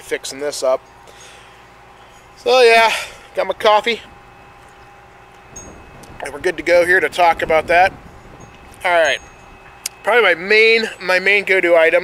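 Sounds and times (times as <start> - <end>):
faint steady hum: 0.0 - 12.0
wind rumble on microphone: 3.6 - 10.0.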